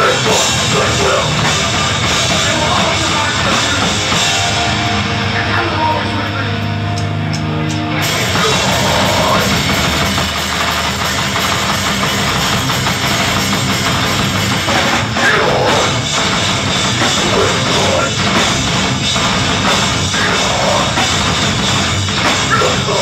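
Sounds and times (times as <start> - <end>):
vocalist screaming: 0.0 - 1.5, 8.2 - 9.7, 15.2 - 16.1, 17.2 - 18.2, 20.1 - 21.2, 22.5 - 23.0
bass guitar: 0.0 - 23.0
distorted electric guitars: 0.0 - 23.0
pounding drum kit: 0.0 - 23.0.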